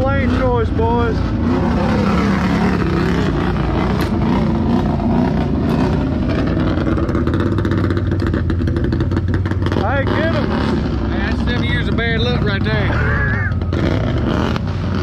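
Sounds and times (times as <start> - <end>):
engines idling: 0.0 - 15.0
person calling out: 12.8 - 13.6.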